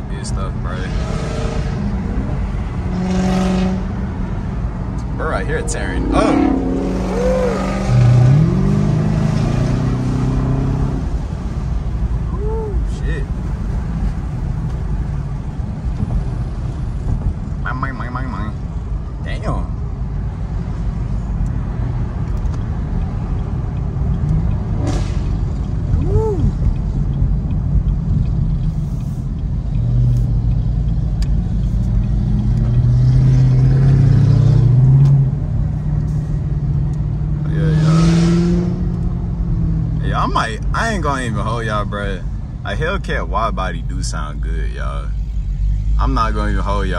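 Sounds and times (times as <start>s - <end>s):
car engine drone from inside cabin: 0.0s - 46.9s.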